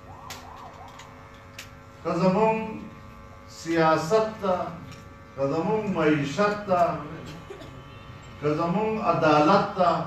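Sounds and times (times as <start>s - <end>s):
faint siren-like wail: 0.0s - 1.7s
steady mains hum: 0.0s - 10.0s.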